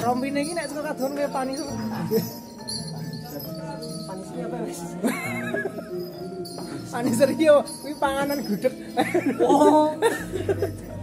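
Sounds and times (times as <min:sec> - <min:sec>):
gamelan music: 0:00.0 - 0:11.0.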